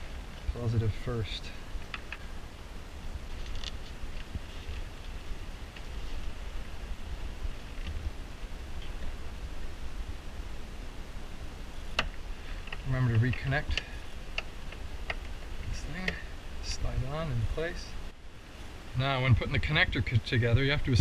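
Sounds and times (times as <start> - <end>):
steady low rumble: 0.0 - 21.0
hands rustling wiring: 3.2 - 9.4, 11.8 - 16.8.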